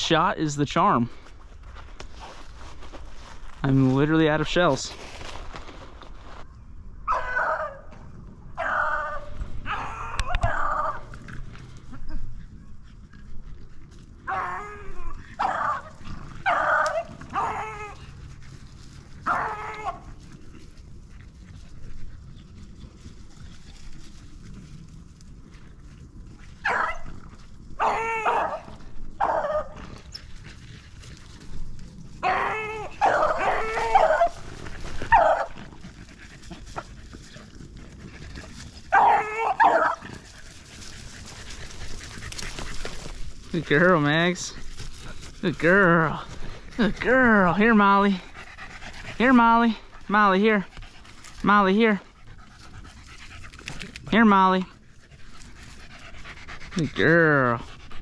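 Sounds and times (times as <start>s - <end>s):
hounds baying: 7.0s - 8.0s, 8.6s - 11.2s, 14.2s - 18.6s, 26.6s - 30.1s, 32.2s - 43.2s.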